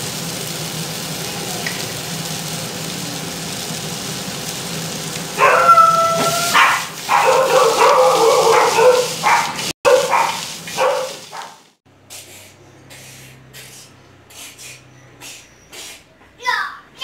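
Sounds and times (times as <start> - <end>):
food sizzling in a frying pan: 0.0 - 11.8
dog whining: 5.4 - 9.6.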